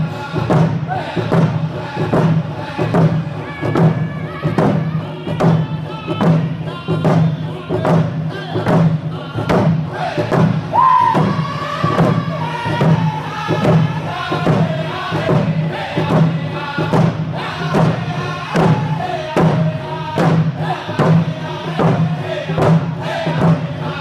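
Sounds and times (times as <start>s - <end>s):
hand drums beating: 0.0s - 24.0s
men singing in unison: 0.0s - 24.0s
high voice singing: 9.2s - 15.4s.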